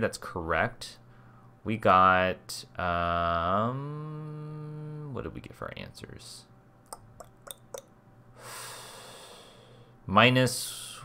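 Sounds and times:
long breath out: 8.4s - 10.0s.

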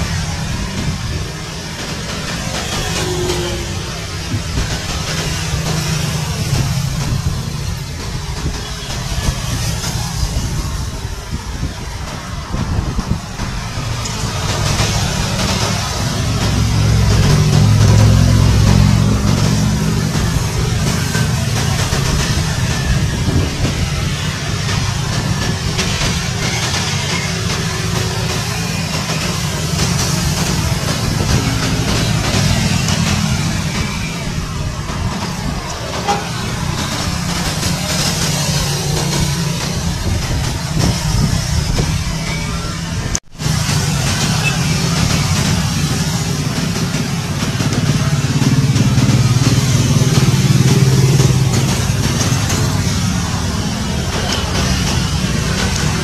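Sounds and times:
helicopter rotors and turbines: 0.0s - 56.0s.

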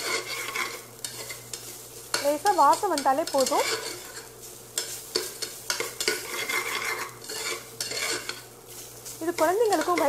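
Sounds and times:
spoon scraping and knocking pot: 0.0s - 8.6s, 9.3s - 10.0s
faint sizzle: 0.0s - 10.0s
metal spoon stirring food: 0.0s - 10.0s.

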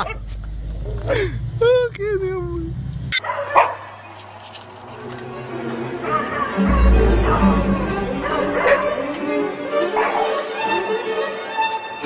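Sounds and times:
dog bark: 3.2s - 4.0s.

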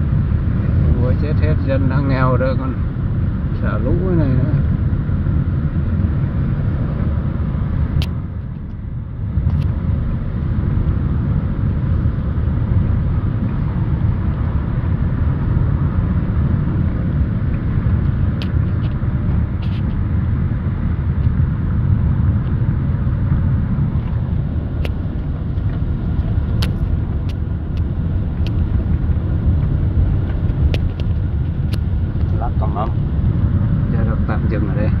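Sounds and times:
car driving rumble inside cabin: 0.0s - 35.0s.

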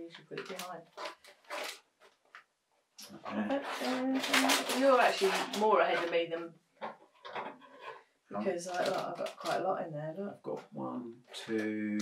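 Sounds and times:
plastic packaging crinkling: 0.0s - 2.5s, 3.2s - 6.4s, 8.4s - 9.7s.

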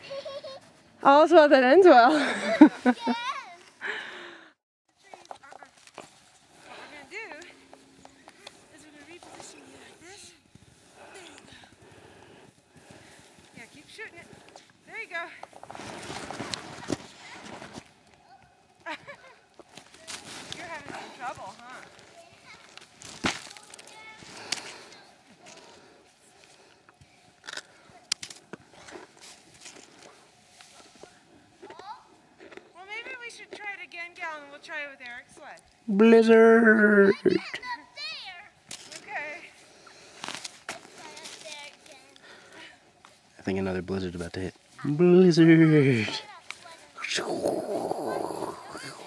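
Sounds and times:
footsteps crunching in snow: 5.6s - 18.0s.

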